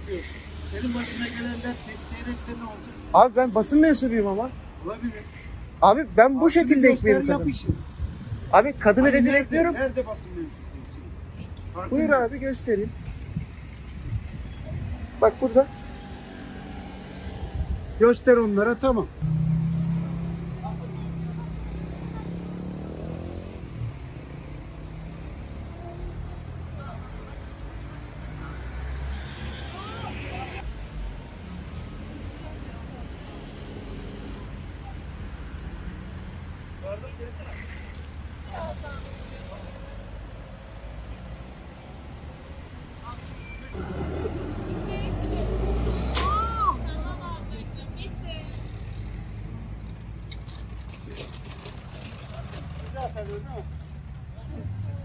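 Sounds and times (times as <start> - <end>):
low vehicle rumble: 19.2 - 24.1.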